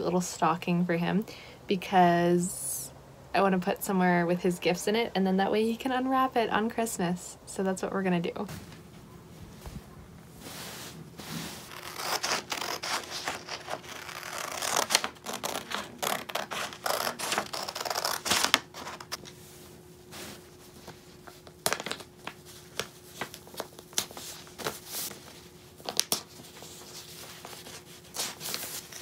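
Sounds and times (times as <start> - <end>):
scissors snipping paper: 11.8 - 18.6
paper rustling: 20.1 - 29.0.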